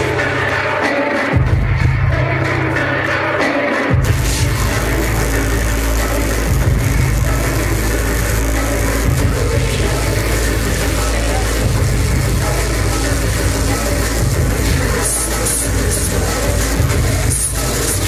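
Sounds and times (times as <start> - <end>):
industrial electronic music: 0.0 - 18.0.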